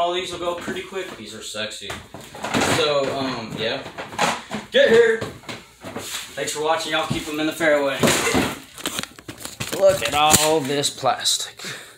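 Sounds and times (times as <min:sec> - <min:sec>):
phone handling rustle: 0:08.6 - 0:10.8.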